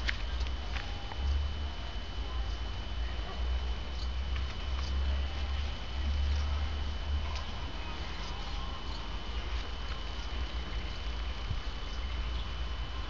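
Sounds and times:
low fluctuating microphone rumble: 0.0s - 13.0s
thin steady high whine: 0.0s - 13.0s.

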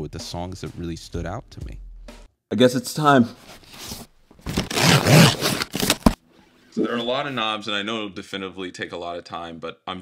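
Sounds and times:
cardboard tearing: 3.7s - 6.2s.

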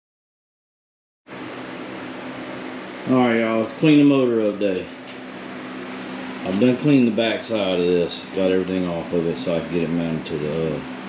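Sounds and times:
fan-like hum and hiss: 1.3s - 11.0s.

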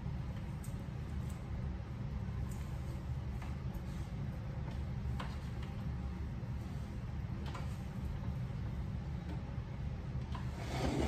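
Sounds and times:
steady low hum: 0.0s - 11.0s
cloth wiping wooden table: 10.5s - 11.0s.

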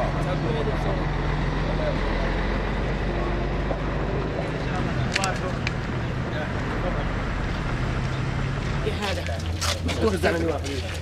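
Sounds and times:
vehicle engine idling: 0.0s - 9.3s
crowd talking indistinctly: 0.0s - 11.0s.

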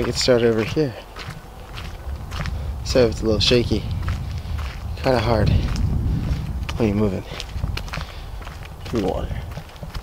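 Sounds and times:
footsteps walking: 0.0s - 10.0s
low rumble: 1.2s - 9.6s.

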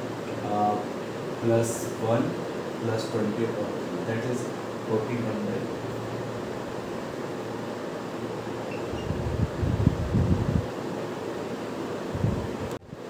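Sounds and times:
background hiss: 0.0s - 13.0s.

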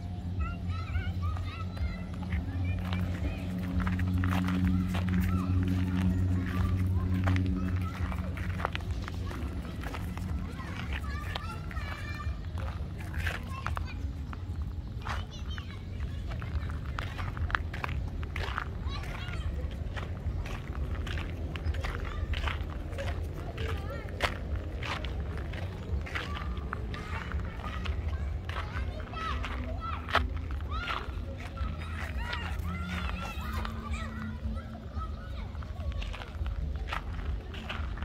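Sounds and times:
footsteps crunching on gravel: 0.0s - 38.0s.

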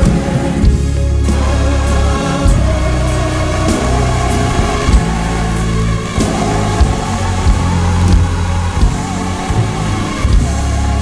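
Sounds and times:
bright percussion hits: 0.0s - 11.0s
gospel church music: 0.0s - 11.0s
low bass chords: 0.0s - 11.0s.

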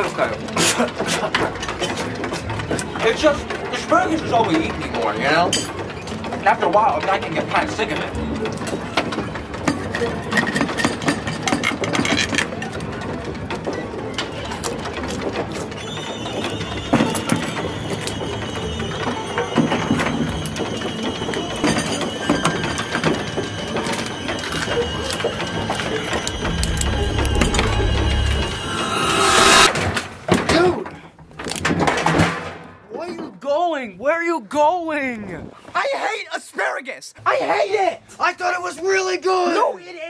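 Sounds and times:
sustained high tones: 22.4s - 29.9s.

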